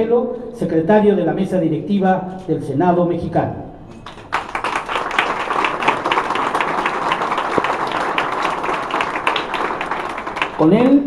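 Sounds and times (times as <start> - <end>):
audience applauding: 3.9 - 11.0.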